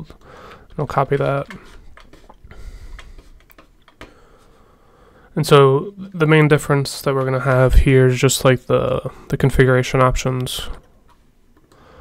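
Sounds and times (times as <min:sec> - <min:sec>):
computer keyboard keystrokes: 0:00.5 - 0:04.2.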